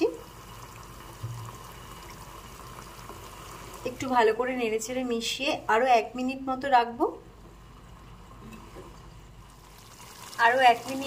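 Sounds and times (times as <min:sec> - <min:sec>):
curry simmering in a pan: 0:00.0 - 0:04.3, 0:07.5 - 0:11.0.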